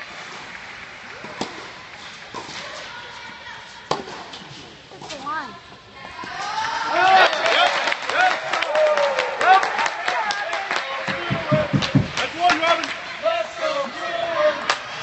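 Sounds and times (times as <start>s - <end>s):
racquets hitting tennis ball: 1.1s - 3.2s, 3.8s - 5.3s, 11.1s - 13.0s
spectators shouting and cheering: 6.2s - 15.0s.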